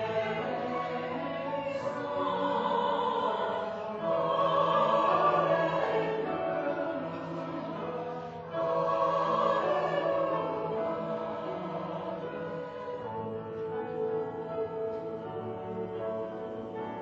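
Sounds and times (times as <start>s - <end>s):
church choir singing: 0.0s - 17.0s.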